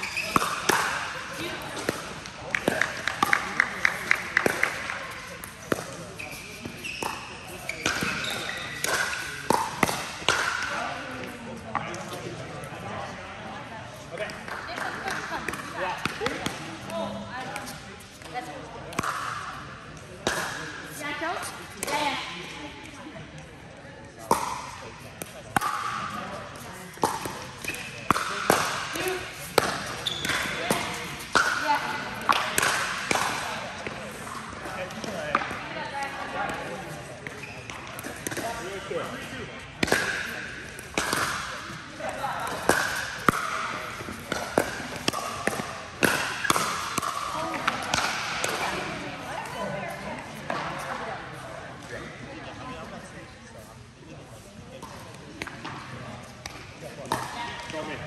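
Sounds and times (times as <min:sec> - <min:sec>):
ball bouncing on hard court: 0:00.0 - 0:01.1, 0:01.7 - 0:10.8, 0:39.8 - 0:41.8, 0:42.4 - 0:48.9.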